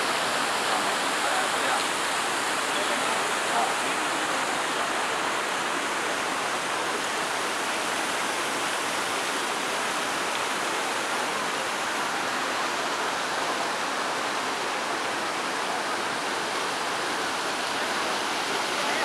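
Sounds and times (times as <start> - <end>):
fountain water splashing: 0.0 - 19.0.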